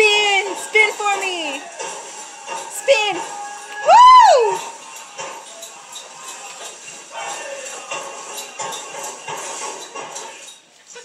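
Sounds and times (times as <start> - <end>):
powwow drum and singing music: 3.4 - 5.5.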